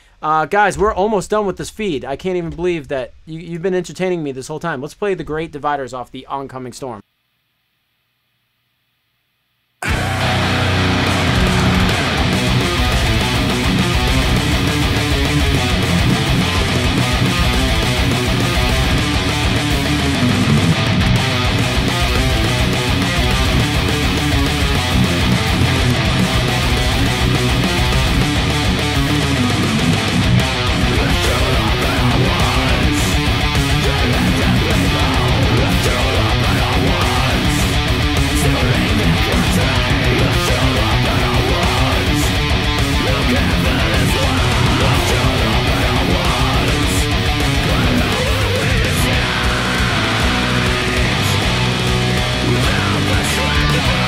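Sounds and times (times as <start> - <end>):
electric guitar metal riffs: 9.8 - 54.0.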